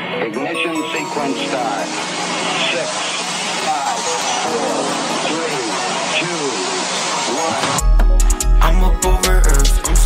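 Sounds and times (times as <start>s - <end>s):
hip-hop beat with heavy bass: 3.8s - 10.0s.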